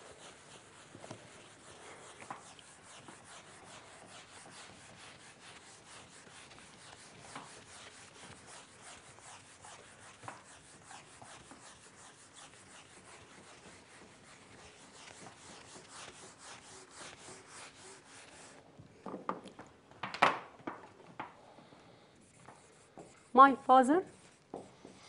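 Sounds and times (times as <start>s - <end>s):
eraser scrubbing a whiteboard: 0.0s - 18.6s, 22.2s - 25.0s.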